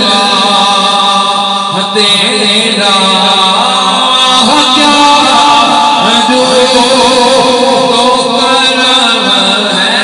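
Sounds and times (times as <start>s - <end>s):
man chanting devotional poem: 0.0s - 10.0s.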